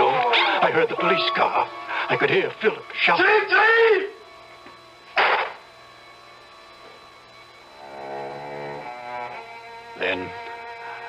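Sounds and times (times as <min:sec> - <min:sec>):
man crying out: 0:00.0 - 0:02.2
low sustained music chords: 0:00.0 - 0:11.0
gunshot sound effect: 0:05.2 - 0:05.6.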